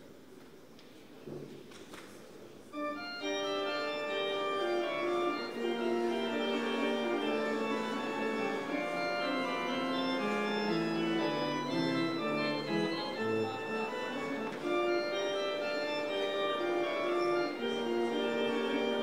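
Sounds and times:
church organ chords: 2.7s - 19.0s.

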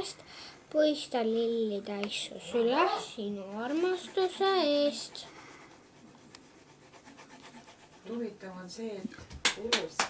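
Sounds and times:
pen rubbing on paper: 3.3s - 8.4s.

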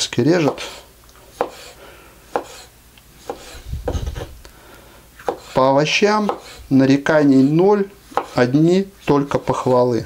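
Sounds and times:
knife tapping cutting board: 8.1s - 8.4s.

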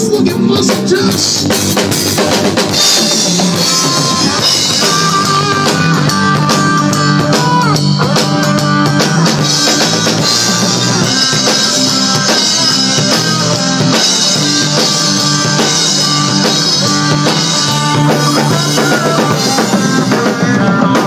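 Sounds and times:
rock drum beat: 0.0s - 21.0s.

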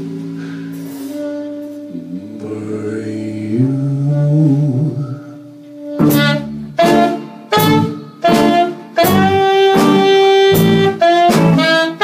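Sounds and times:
tenor saxophone: 0.0s - 12.0s
electric guitar: 5.6s - 12.0s.

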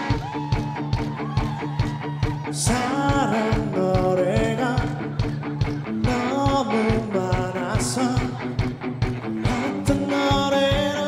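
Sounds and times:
guitar melody with bent notes: 0.0s - 11.0s
steady drum beat: 0.0s - 11.0s.

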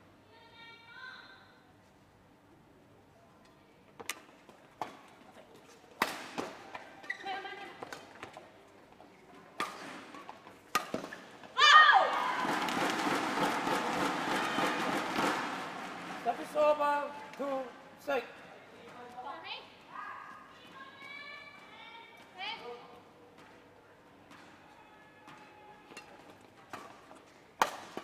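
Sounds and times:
racket hitting shuttlecock: 6.0s - 7.2s, 9.6s - 11.4s, 12.1s - 16.2s, 25.3s - 28.0s
shoe squeaks on court: 7.0s - 7.6s
loud shout: 11.6s - 12.8s, 13.5s - 15.5s
crowd cheering: 11.6s - 16.8s.

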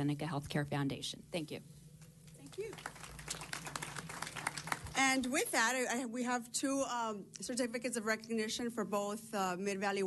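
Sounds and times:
faint steady hum: 0.0s - 10.0s
audience applause: 2.5s - 5.1s.

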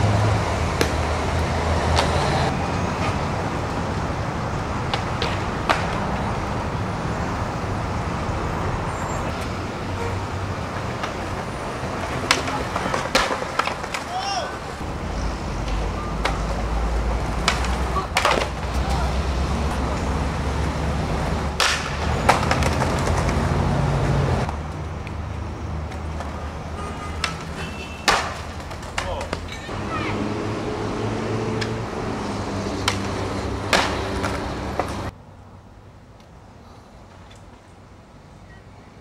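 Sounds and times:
skateboard rolling and grinding: 0.0s - 7.4s, 9.3s - 26.5s, 27.3s - 35.1s
skateboard knocks and landings: 4.9s - 6.3s, 10.7s - 14.4s, 17.2s - 18.9s, 21.5s - 23.6s, 27.2s - 29.7s, 32.7s - 35.1s.

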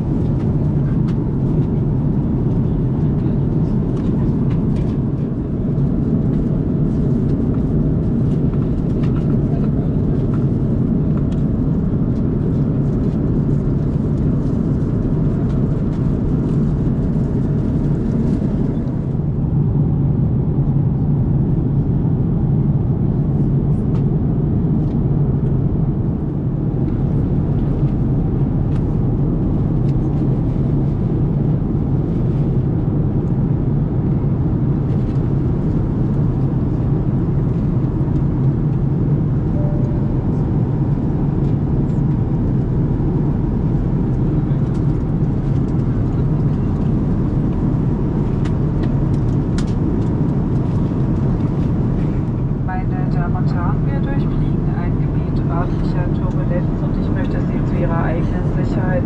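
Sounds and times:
airplane cabin rumble: 0.0s - 59.0s.

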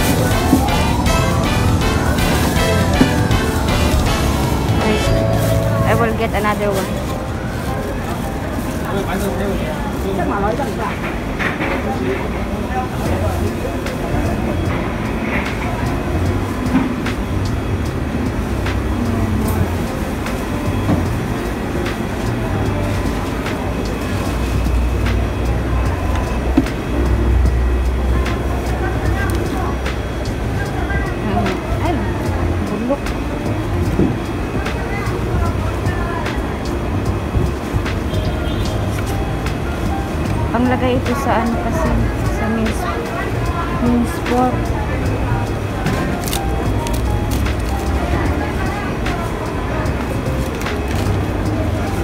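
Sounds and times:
indistinct voices: 0.0s - 52.0s.

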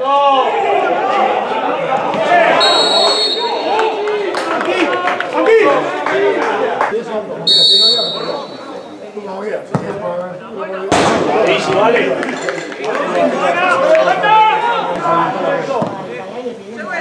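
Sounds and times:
players and spectators shouting: 0.0s - 9.4s, 13.0s - 15.8s
referee's whistle blast: 2.6s - 3.8s, 7.5s - 9.0s.

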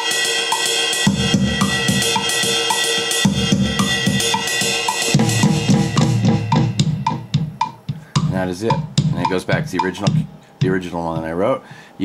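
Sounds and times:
drum kit playing: 0.0s - 11.8s.

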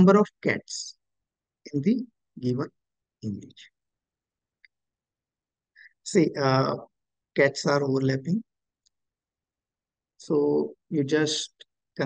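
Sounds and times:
person speaking: 1.7s - 3.8s.

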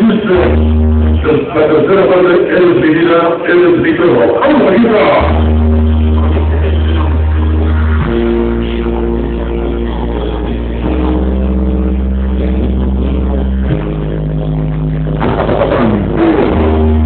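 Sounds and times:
loud music with bass and chords: 0.0s - 17.0s.

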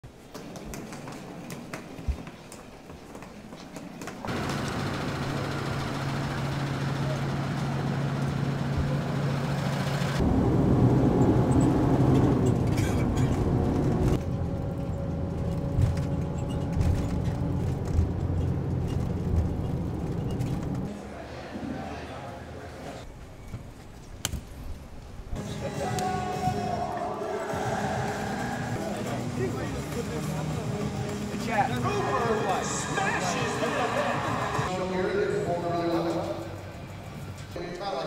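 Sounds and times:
bus engine and road rumble: 3.9s - 25.4s.

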